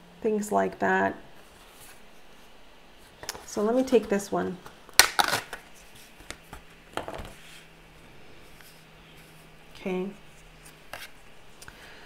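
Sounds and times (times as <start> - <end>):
paper rustling and snapping: 4.9 - 7.4.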